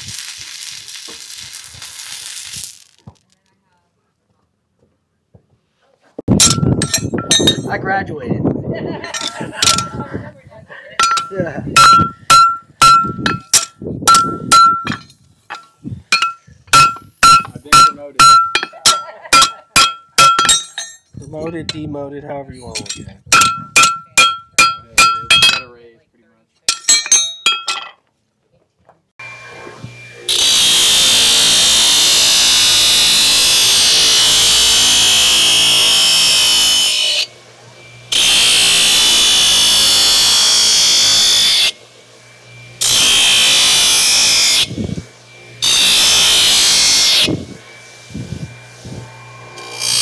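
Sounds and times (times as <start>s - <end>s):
steel grinding on belt: 0.0s - 3.3s, 6.4s - 8.0s, 8.9s - 10.3s, 11.0s - 25.7s, 29.2s - 50.0s
hammer striking horseshoe on anvil: 6.3s - 7.8s, 9.1s - 10.0s, 11.0s - 21.8s, 22.7s - 25.7s, 26.7s - 28.0s
belt grinder motor: 29.2s - 50.0s.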